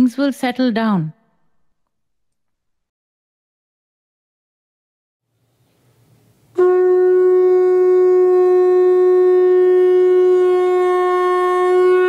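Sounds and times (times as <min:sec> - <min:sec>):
long horn note: 0:06.5 - 0:12.0.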